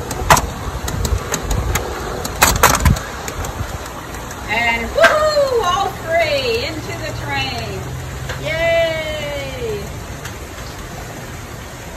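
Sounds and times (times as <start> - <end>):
high voice falling whoop: 5.0 - 5.8, 8.4 - 9.9.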